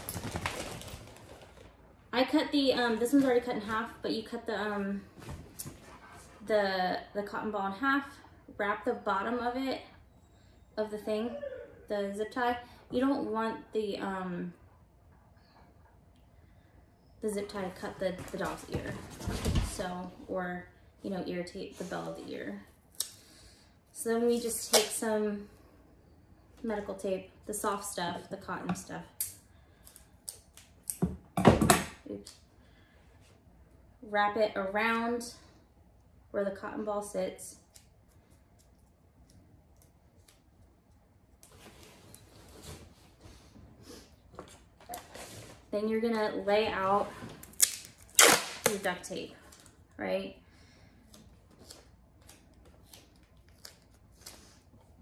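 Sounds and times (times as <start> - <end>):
tape tearing off roll: 47.4 - 48.9.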